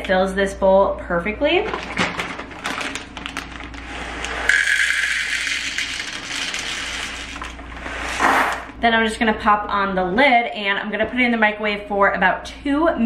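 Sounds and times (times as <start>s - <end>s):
popcorn kernels being poured: 2.8s - 8.6s.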